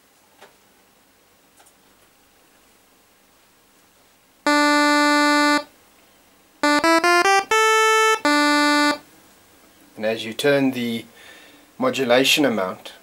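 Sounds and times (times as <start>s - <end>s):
buzzy pulse-wave synth notes: 4.5s - 5.7s, 6.6s - 9.0s.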